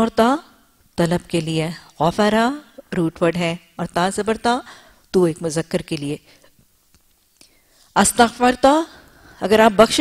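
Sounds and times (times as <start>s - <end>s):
woman's voice: 0.0s - 6.4s, 8.0s - 10.0s
soft breath: 4.7s - 5.0s, 7.4s - 8.0s, 8.9s - 9.4s.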